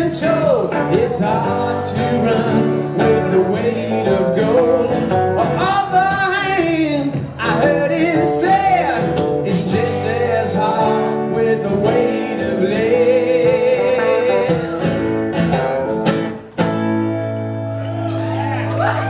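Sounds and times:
man singing: 0.0s - 15.1s
acoustic guitar: 0.0s - 19.0s
electric guitar: 0.0s - 19.0s.

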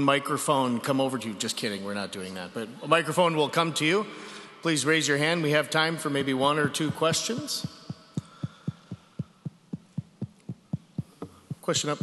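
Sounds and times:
regular low thumps: 6.6s - 12.0s.

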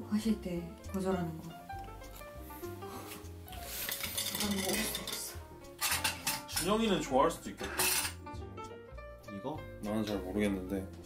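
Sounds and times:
spoon and ice rattling in glass: 3.9s - 6.8s, 7.6s - 8.2s.

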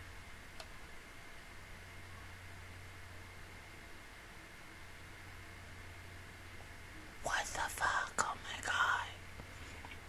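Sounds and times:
low steady hiss: 0.0s - 10.0s
woman whispering: 7.2s - 9.3s.

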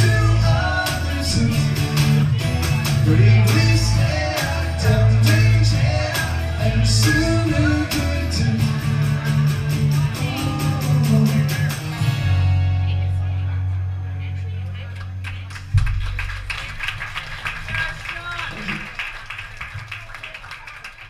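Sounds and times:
audience voices: 0.0s - 21.0s
held low bass note: 12.2s - 16.7s
audience clapping: 14.8s - 21.0s
loud low final hit: 15.7s - 16.7s.

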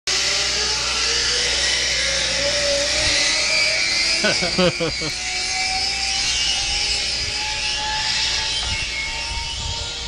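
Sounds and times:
zipline trolley whirring on cable: 0.1s - 10.0s.

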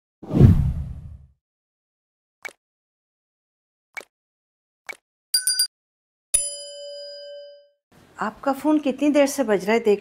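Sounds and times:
low whoosh: 0.3s - 1.2s.

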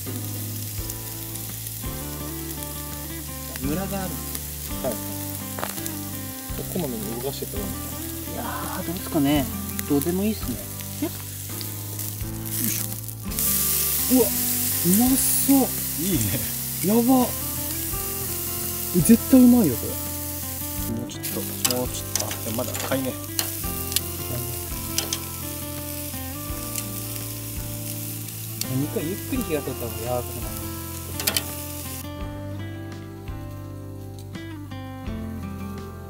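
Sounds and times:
fire crackles and pops: 0.0s - 36.0s
steak sizzling on grill: 0.0s - 36.0s.

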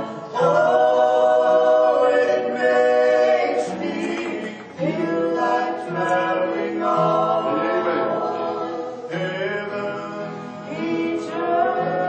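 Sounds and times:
group singing gospel in harmony: 0.0s - 12.0s.

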